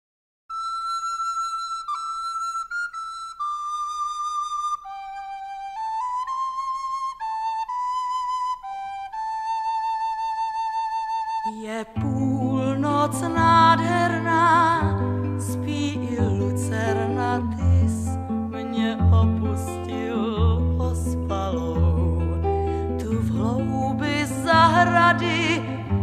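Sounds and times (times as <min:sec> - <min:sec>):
solo flute melody: 0:00.5 - 0:18.4
woman singing: 0:11.4 - 0:26.0.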